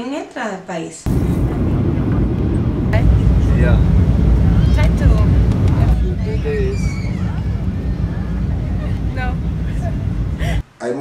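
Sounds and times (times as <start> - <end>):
airliner cabin rumble: 1.1 - 10.6
faint voices: 1.1 - 10.6.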